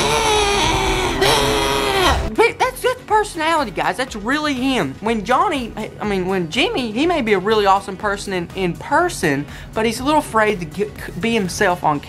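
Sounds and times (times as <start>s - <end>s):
man screaming high-pitched: 0.0s - 2.3s.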